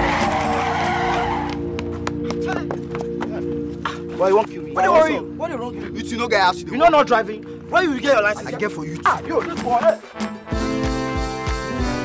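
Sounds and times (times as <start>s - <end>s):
background music: 0.0s - 12.0s
men shouting: 7.8s - 10.2s.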